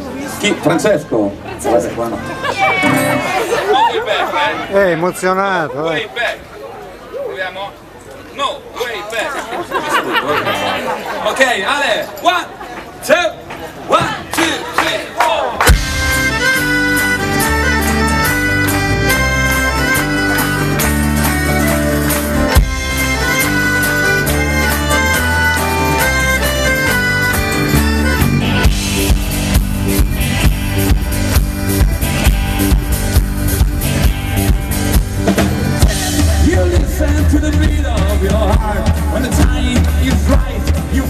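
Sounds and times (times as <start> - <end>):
live rock band playing: 2.2 - 4.7, 15.6 - 41.0
guitars: 2.5 - 3.7, 15.7 - 41.0
accordion chords: 2.5 - 3.9, 15.6 - 41.0
bending melody line: 2.7 - 3.7, 15.7 - 41.0
drums steady beat: 15.6 - 41.0.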